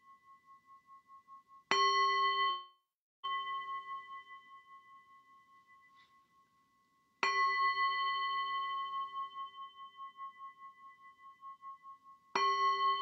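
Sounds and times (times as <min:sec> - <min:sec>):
metal singing bowl ringing: 0:00.0 - 0:13.0.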